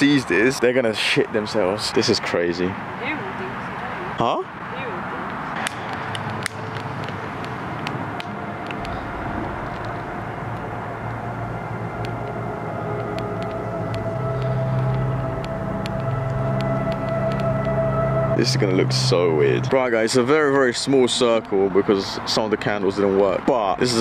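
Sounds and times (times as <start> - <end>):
rushing background noise: 0.0 - 24.0
sharp clicks: 5.3 - 9.0
low droning hum: 5.5 - 23.2.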